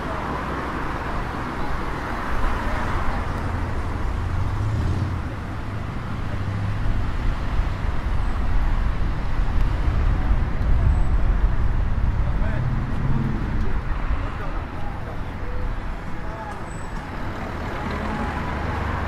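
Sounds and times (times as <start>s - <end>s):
passing cars rumbling: 0.0s - 19.0s
people talking: 12.2s - 12.7s, 13.6s - 18.7s.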